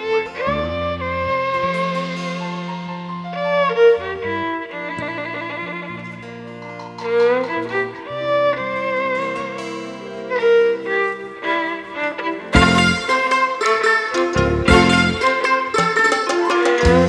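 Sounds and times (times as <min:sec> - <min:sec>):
amplified violin melody: 0:00.0 - 0:17.0
band playing low chords: 0:12.5 - 0:16.0, 0:16.7 - 0:17.0.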